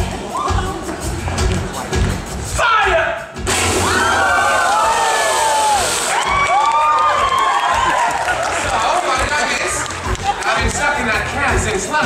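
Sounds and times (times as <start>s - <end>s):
audience cheering and whooping: 3.5s - 10.6s.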